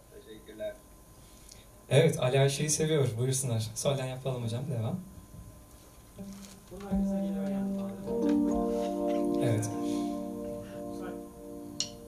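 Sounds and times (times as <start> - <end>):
held organ-like keyboard note: 6.2 - 12.0.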